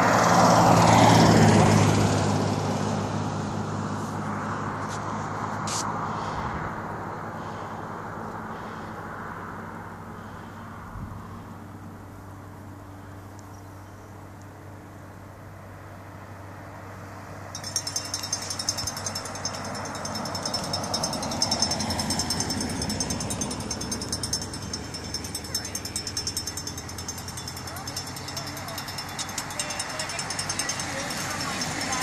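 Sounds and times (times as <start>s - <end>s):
car driving past on asphalt: 0.0s - 11.7s, 16.2s - 25.4s.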